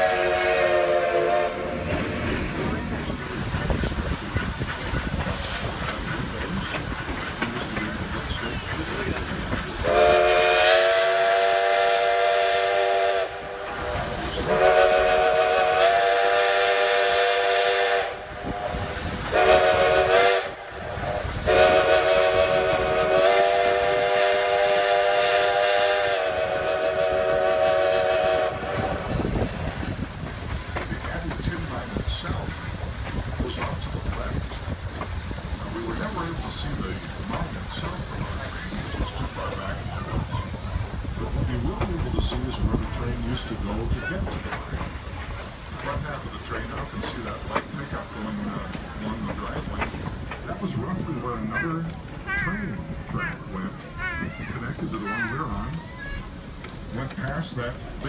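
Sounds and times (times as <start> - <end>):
steam whistle blasts: 0.0 - 2.3, 9.8 - 13.7, 14.5 - 18.2, 19.3 - 20.6, 21.4 - 29.1
train rolling noise: 0.0 - 58.0.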